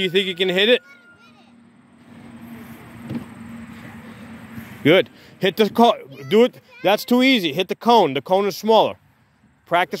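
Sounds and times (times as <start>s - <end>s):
motor vehicle passing: 0.0s - 10.0s.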